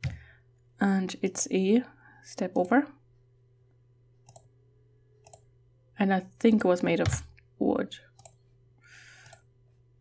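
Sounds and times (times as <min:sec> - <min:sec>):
computer mouse clicks: 0:02.5 - 0:02.8, 0:04.2 - 0:04.5, 0:05.2 - 0:05.5, 0:06.5 - 0:07.4, 0:08.1 - 0:08.4, 0:09.2 - 0:09.5.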